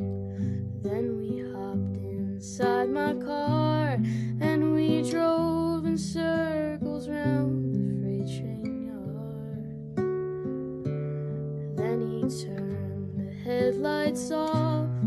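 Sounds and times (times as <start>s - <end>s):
woman singing: 0.0s - 9.8s, 11.7s - 15.0s
classical guitar strumming chords: 0.0s - 15.0s.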